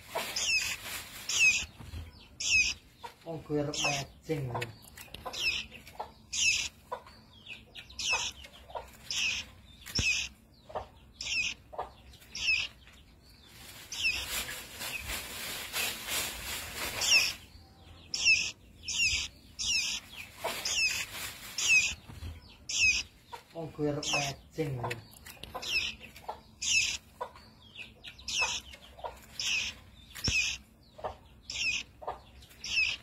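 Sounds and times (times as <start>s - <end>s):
rustling: 0.0s - 2.8s, 13.5s - 17.5s, 18.2s - 23.0s
fledgling bird chirping: 0.0s - 33.0s.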